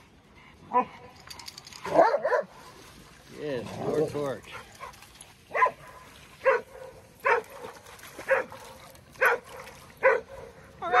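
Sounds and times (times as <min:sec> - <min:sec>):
dog barking: 0:01.8 - 0:02.5, 0:05.5 - 0:10.5.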